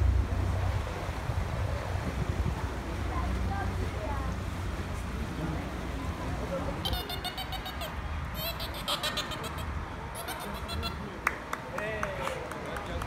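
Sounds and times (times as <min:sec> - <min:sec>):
wind rumbling on microphone: 0:00.0 - 0:06.8
dolphin squeaks and clicks: 0:06.9 - 0:11.0.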